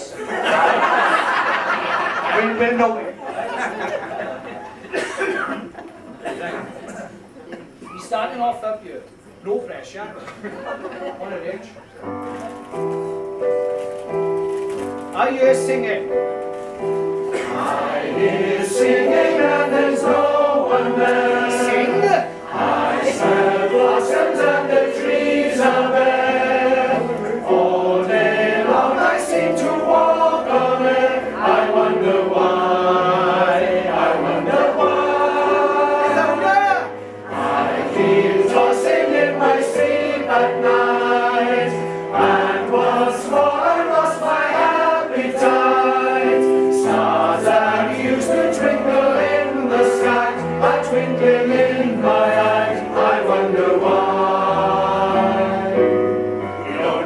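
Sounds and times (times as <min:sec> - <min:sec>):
male voice choir singing: 0:17.3 - 0:57.0.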